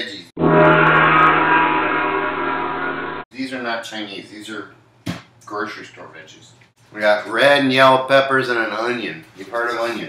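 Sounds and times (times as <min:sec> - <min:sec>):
gong ringing: 0:00.4 - 0:03.3.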